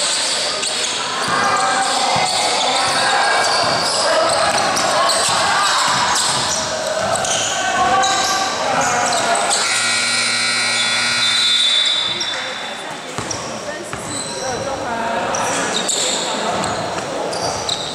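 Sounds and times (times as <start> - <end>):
voices echoing: 0.0 - 17.9
basketball bouncing: 3.5 - 7.4, 13.2 - 14.6
scoreboard buzzer: 9.4 - 12.4.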